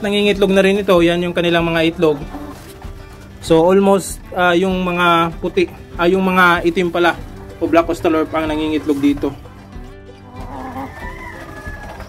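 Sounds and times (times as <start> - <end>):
background music: 0.0 - 12.0
rooster crowing: 10.4 - 12.0.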